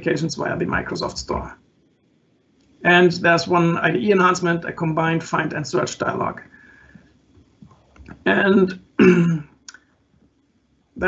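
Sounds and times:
man clearing his throat: 9.0s - 9.5s.

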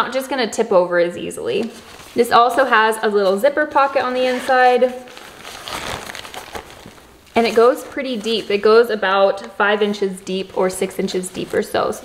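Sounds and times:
fabric rustling: 1.4s - 12.0s.

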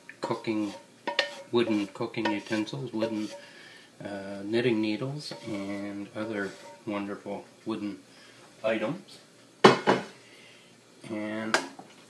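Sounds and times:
wooden spoon knocking cookware: 0.6s - 3.4s.

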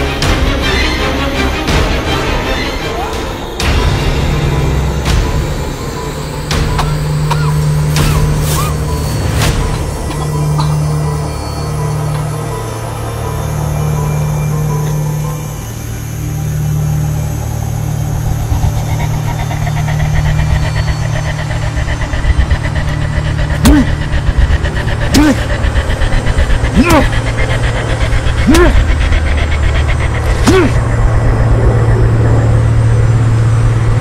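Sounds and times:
car engine idling: 3.1s - 34.0s.

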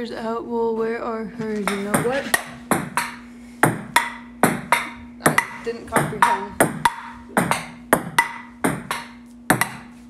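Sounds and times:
ping-pong ball hits: 1.6s - 10.0s.

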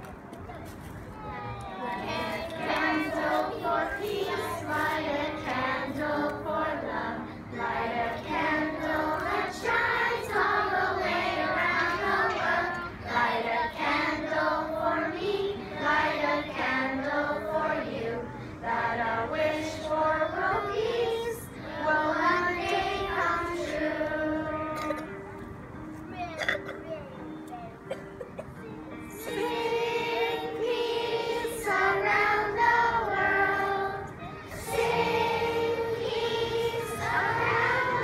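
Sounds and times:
children singing together: 1.7s - 25.1s, 29.1s - 38.0s.

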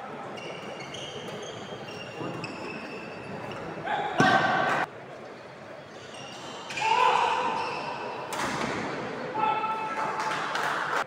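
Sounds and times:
shoes squeaking on wooden floor: 0.4s - 3.8s.

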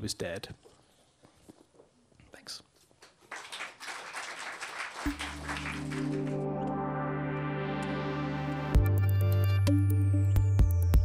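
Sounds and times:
audience applauding: 3.0s - 6.7s.

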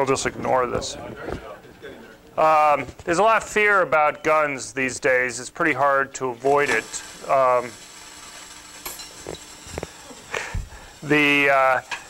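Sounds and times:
faint hiss and hum: 0.0s - 12.0s.

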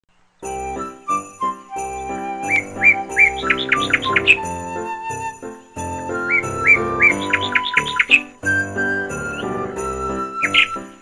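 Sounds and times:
background music: 0.4s - 11.0s
chirping whistle notes: 0.4s - 11.0s.

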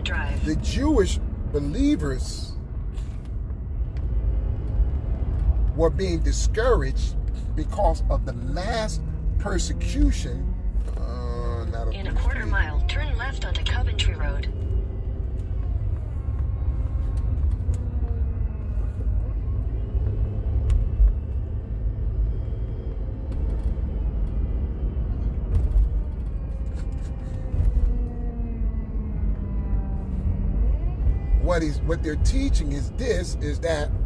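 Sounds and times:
car interior engine and road noise: 0.0s - 34.0s.

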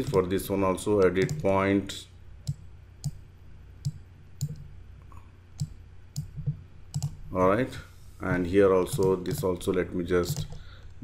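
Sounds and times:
computer mouse clicking: 0.0s - 0.3s, 1.0s - 1.5s, 2.4s - 3.2s, 3.8s - 4.7s, 5.6s - 7.2s, 8.9s - 9.7s, 10.3s - 10.6s.

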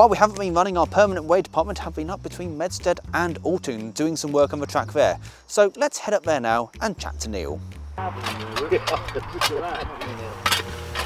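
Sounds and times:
men talking: 0.0s - 10.5s
leaf blower engine running: 8.0s - 11.0s
man laughing: 8.6s - 9.8s.

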